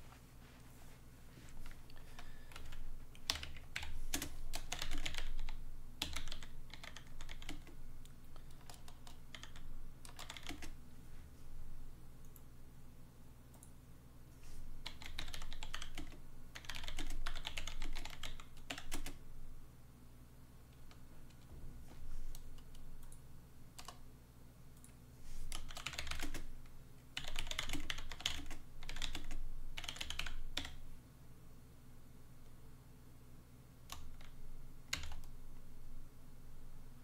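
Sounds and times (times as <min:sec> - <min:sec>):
typing on a computer keyboard: 0:02.2 - 0:10.8, 0:14.8 - 0:19.2, 0:23.8 - 0:24.0, 0:24.8 - 0:26.5, 0:27.2 - 0:30.8, 0:33.9 - 0:35.4.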